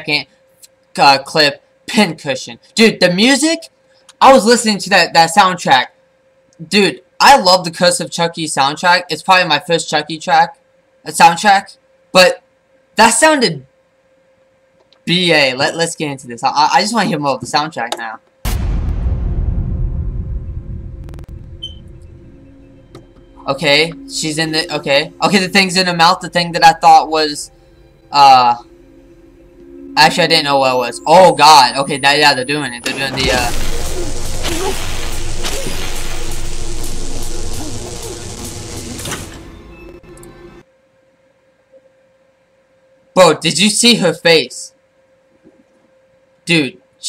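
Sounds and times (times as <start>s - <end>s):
low rumbling drone: 18.5s - 40.6s
horror film music: 18.6s - 40.6s
loud harsh noise: 32.9s - 39.7s.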